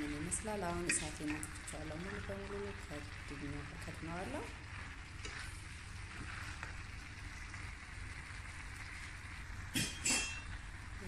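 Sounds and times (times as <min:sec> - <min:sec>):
vegetables sizzling in a pot: 0:00.0 - 0:11.0
utensil clinking against pot: 0:09.8 - 0:10.5.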